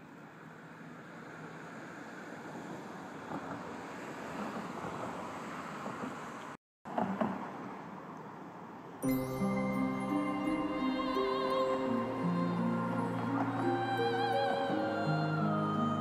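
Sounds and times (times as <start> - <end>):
distant traffic noise: 0.0 - 9.0.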